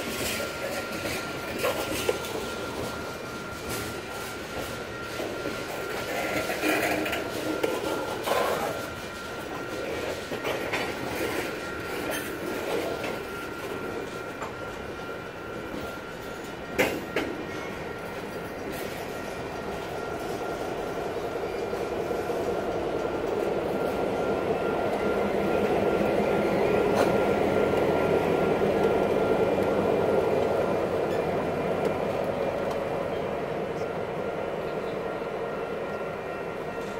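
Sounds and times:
diesel locomotive engine: 0.0s - 36.9s
train wheels on rails: 0.0s - 36.9s.

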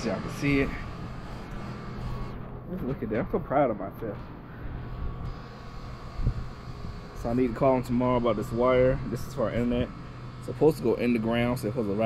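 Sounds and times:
air conditioner units humming: 0.0s - 12.0s.

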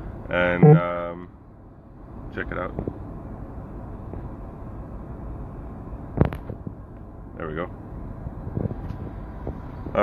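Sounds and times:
jet cockpit noise: 0.5s - 1.0s.

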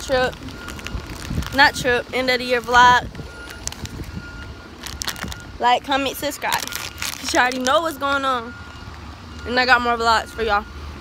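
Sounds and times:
vehicle reversing alarm beeping: 0.0s - 11.0s.

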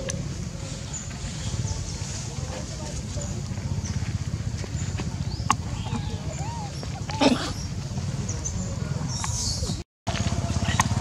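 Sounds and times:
low outdoor rumble: 0.0s - 11.0s
faint squeaky calls: 5.4s - 9.8s
harsh animal call: 5.7s - 7.7s.

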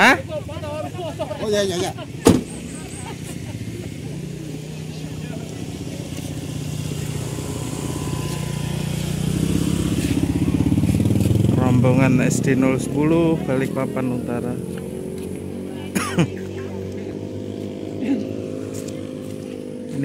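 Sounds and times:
motorcycle engine running: 0.0s - 20.0s
car door slamming: 2.2s - 2.7s.

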